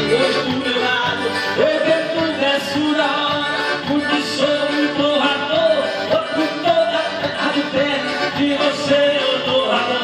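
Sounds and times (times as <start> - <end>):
button accordion chords: 0.0 - 10.0
man singing: 0.0 - 10.0.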